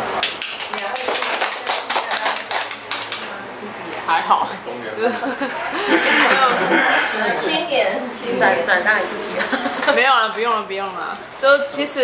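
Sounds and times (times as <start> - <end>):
small audience clapping: 0.1 - 3.4.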